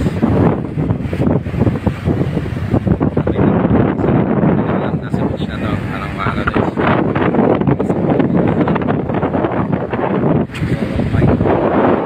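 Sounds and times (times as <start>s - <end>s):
surf washing among rocks: 0.0s - 12.0s
wind buffeting microphone: 0.0s - 12.0s.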